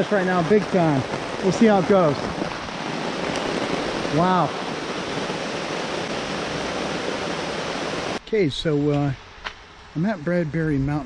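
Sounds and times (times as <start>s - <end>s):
heavy rain: 0.0s - 11.0s.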